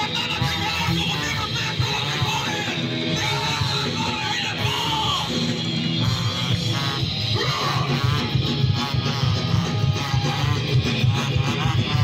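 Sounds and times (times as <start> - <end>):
singer yelling into microphone: 0.0 - 12.0
ska band playing: 0.0 - 12.0.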